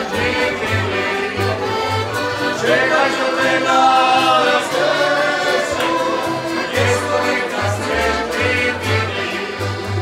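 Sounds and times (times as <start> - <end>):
men singing in harmony: 0.0 - 1.8, 2.4 - 10.0
accordion: 0.0 - 10.0
acoustic guitar: 0.0 - 10.0
plucked double bass: 0.0 - 10.0
tamburicas: 0.0 - 10.0.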